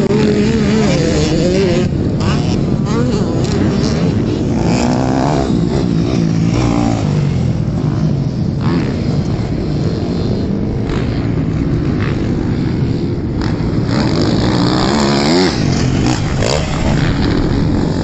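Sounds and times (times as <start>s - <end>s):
dirt bike engines revving: 0.0s - 18.0s.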